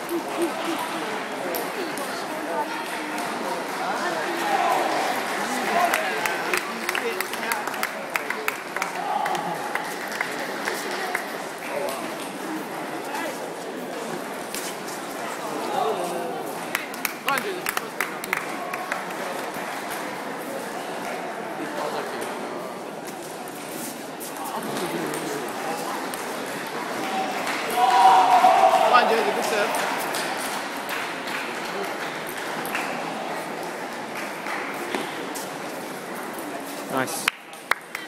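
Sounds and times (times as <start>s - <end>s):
murmur of crowd chatter: 0.0s - 38.0s.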